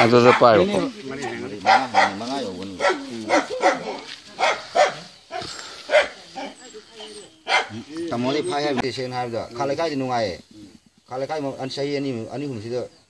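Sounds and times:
dog barking: 0.0 - 7.9
people's voices: 0.0 - 13.0.

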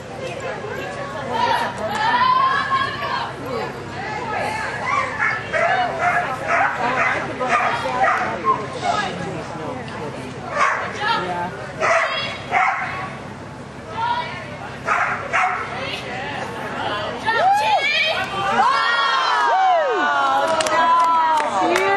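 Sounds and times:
dog barking: 5.0 - 8.4, 10.5 - 10.9, 11.8 - 13.0, 14.9 - 15.7.

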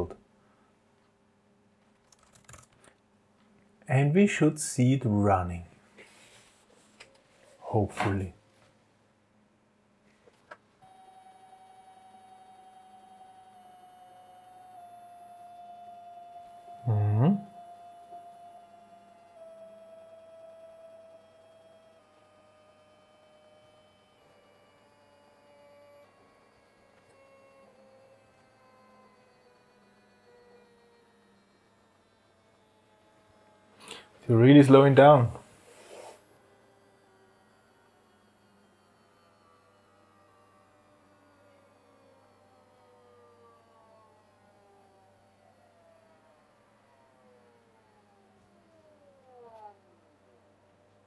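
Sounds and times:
stepper motors whining: 10.8 - 51.0.

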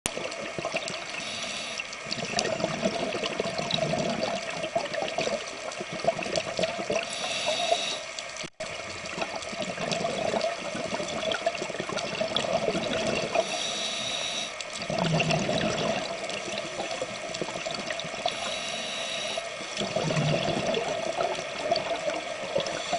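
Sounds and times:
underwater regulator breathing bubbles: 0.1 - 8.1, 9.2 - 22.9.

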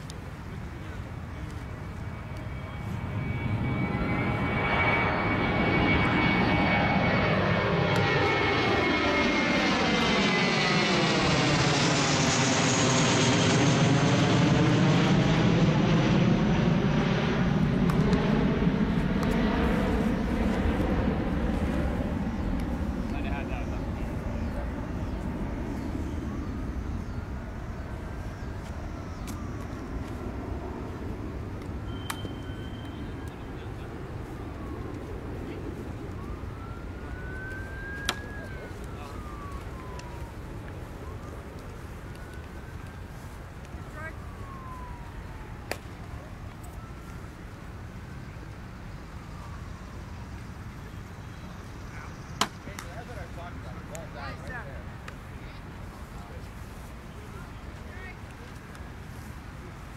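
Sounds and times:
airplane passing low overhead: 0.0 - 59.9.

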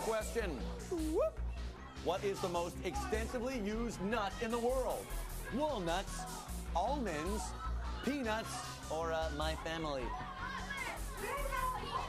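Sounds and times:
background music: 0.0 - 12.0
children calling out: 10.0 - 12.0.

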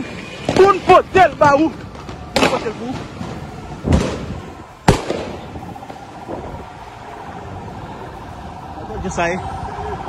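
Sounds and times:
gunshots echoing: 2.4 - 5.6.

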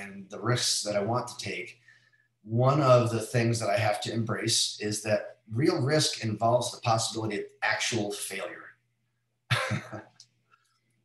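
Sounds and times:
man chuckling: 9.5 - 10.1.

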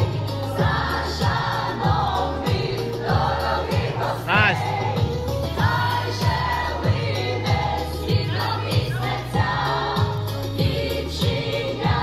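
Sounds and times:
backing music with kick drum: 0.0 - 12.0.

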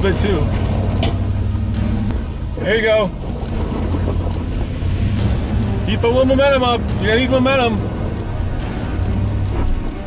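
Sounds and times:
car engine under load: 0.0 - 10.0.

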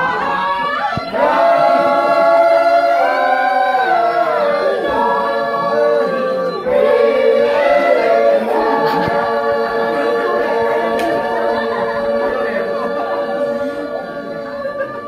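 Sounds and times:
group singing unaccompanied: 0.0 - 15.0.

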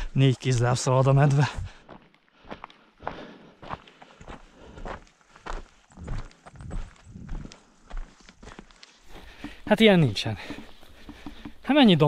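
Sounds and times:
boot footsteps on gravel: 1.0 - 12.0.

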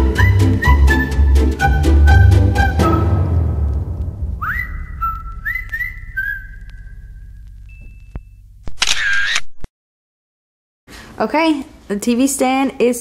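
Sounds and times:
background music: 0.0 - 4.6
whistle-like glides: 0.0 - 8.2
camera shutter sound effect: 8.6 - 9.7.

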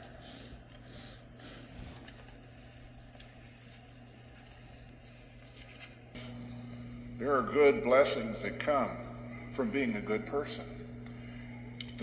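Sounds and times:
steady low hum: 0.0 - 12.0
pages being turned: 1.4 - 6.1.

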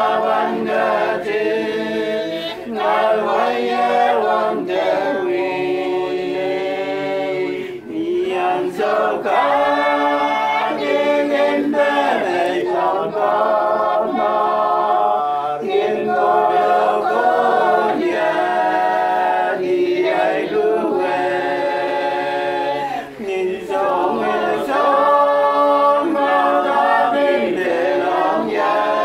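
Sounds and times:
group singing a hymn unaccompanied: 0.0 - 29.0.

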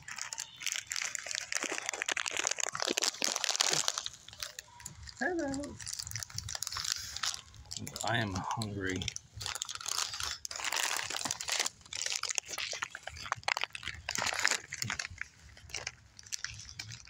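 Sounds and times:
crunchy snack being chewed: 0.0 - 17.0
snack packet crinkling: 0.0 - 17.0.

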